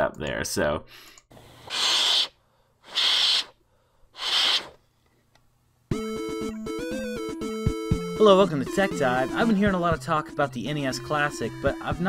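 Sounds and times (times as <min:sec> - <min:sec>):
person blowing puffs of air: 0:01.0 - 0:04.8.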